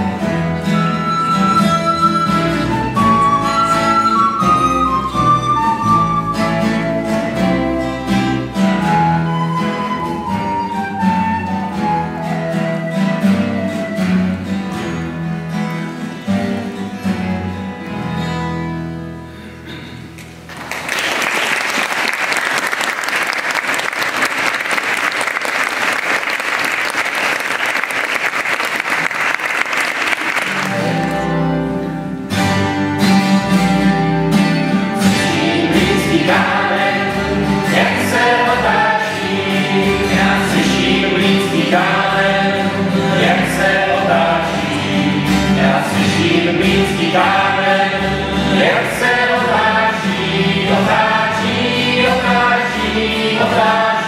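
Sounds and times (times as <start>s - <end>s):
recorder melody: 0.0s - 14.6s
double bass: 0.0s - 20.5s, 30.6s - 54.0s
strummed acoustic guitar: 0.0s - 20.5s, 30.4s - 54.0s
audience applause: 20.5s - 31.2s.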